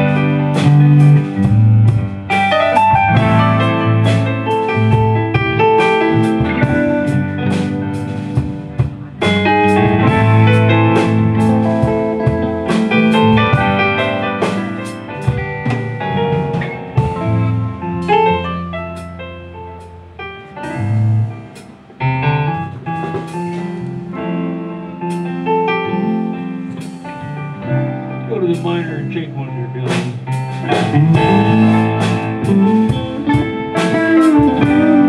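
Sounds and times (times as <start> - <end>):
sharp drum hits: 0.0 - 18.3, 20.7 - 24.1, 29.8 - 35.0
blues-rock band playing: 0.0 - 35.0.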